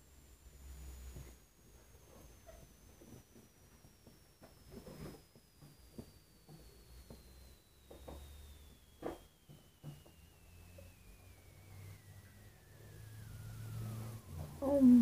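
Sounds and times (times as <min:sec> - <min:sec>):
faint high tone falling in pitch: 0:05.6 - 0:15.0.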